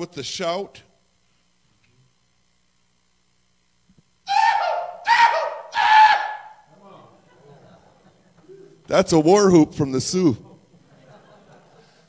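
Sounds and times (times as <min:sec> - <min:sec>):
man whooping: 0:04.3 - 0:06.6.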